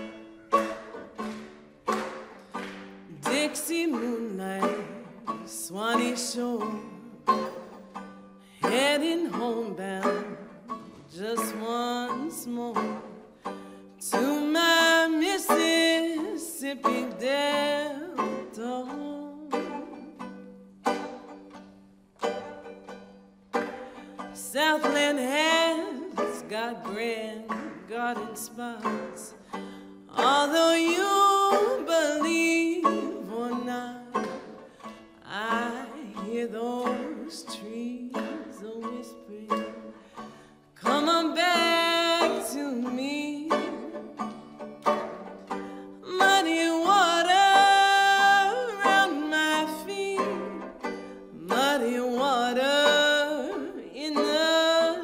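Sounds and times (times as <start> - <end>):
plucked banjo notes: 0.0 - 55.0
woman singing slow song: 3.1 - 7.5, 8.6 - 13.3, 14.0 - 20.0, 24.3 - 34.4, 35.2 - 39.9, 40.8 - 44.3, 46.0 - 55.0.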